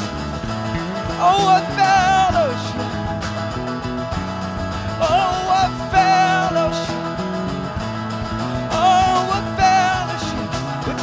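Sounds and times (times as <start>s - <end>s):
electric bass: 0.0s - 11.0s
strummed acoustic guitar: 0.0s - 11.0s.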